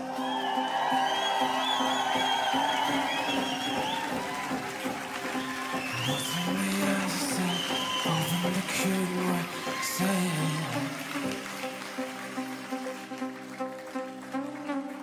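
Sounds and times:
held synthesizer chords: 0:00.0 - 0:15.0.

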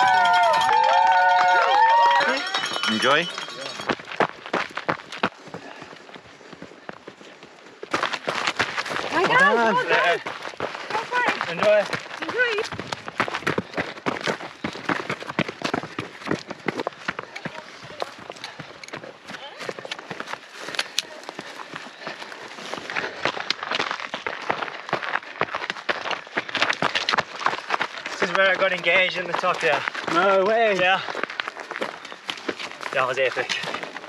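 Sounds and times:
trekking poles tapping ground: 0:00.1 - 0:34.0
footsteps crunching on rocky path: 0:02.4 - 0:34.0.

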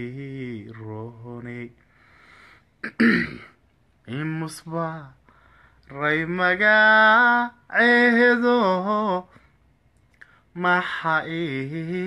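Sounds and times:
man clearing throat: 0:02.8 - 0:03.6.

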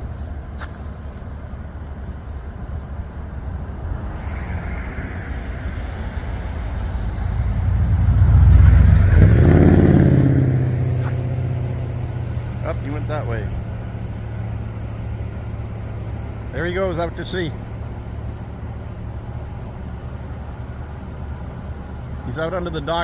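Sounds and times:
vehicle driving past: 0:03.1 - 0:14.9.

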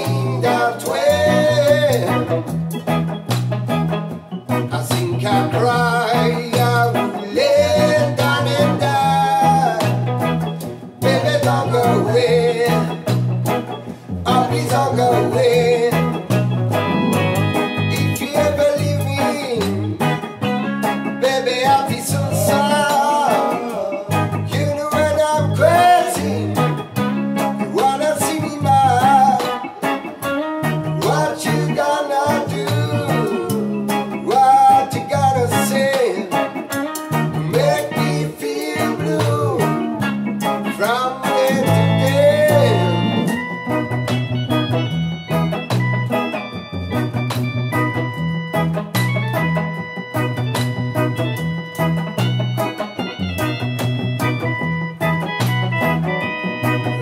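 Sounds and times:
electric guitar: 0:00.0 - 0:57.0
keyboard: 0:00.0 - 0:57.0
rhythmic bass line: 0:00.0 - 0:57.0.

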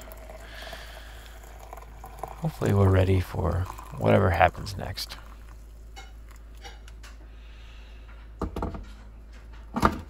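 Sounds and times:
water pouring onto coffee grounds: 0:00.0 - 0:06.4.

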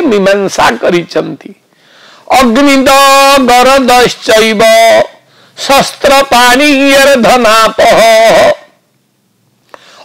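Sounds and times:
intake of breath: 0:01.7 - 0:02.3, 0:05.2 - 0:05.6, 0:09.7 - 0:10.0
man chanting: 0:02.2 - 0:08.8.

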